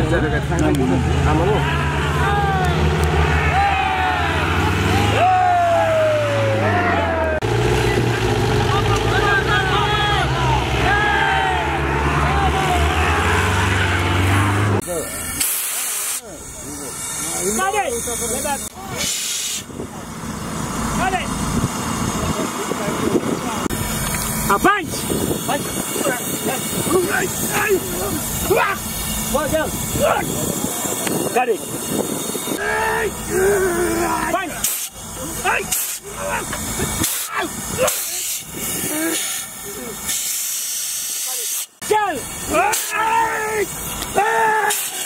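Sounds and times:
men calling out: 0.0 - 14.8, 24.5 - 31.8, 32.4 - 40.1, 41.8 - 45.0
jeep engine running: 0.0 - 41.1, 41.7 - 45.0
outdoor hiss: 14.9 - 19.7, 34.5 - 45.0.

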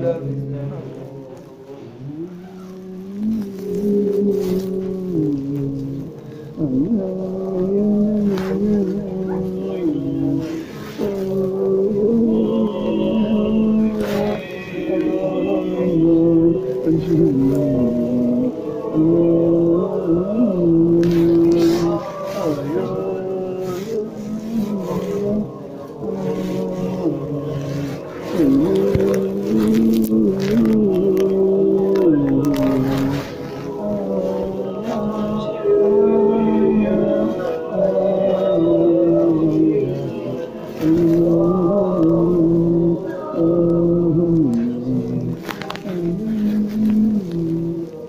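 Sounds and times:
men chanting a prayer melody: 0.0 - 48.0.

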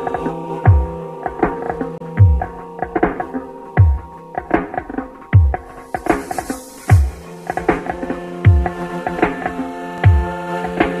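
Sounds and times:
droning chord: 0.0 - 11.0
light ticking percussion: 0.0 - 11.0.

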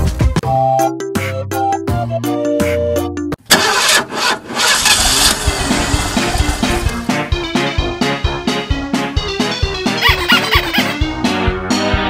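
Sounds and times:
upbeat background music: 0.0 - 3.4, 6.5 - 12.0
engine starting and running: 3.4 - 7.9.

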